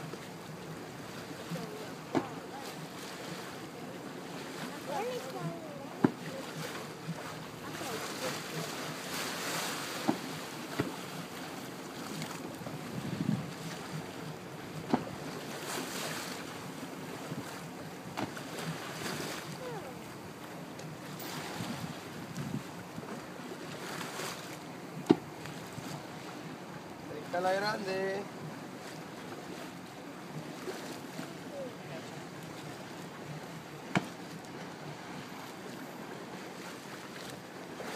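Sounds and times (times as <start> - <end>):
sea water: 0.0 - 37.9
wind: 0.0 - 37.9
faint voices: 1.4 - 9.1, 29.9 - 33.0.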